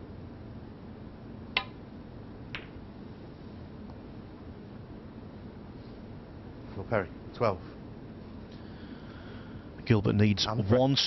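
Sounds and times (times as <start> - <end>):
cue striking ball click: 1.5 - 1.8, 2.5 - 2.8
snooker balls clacking: 2.5 - 2.8.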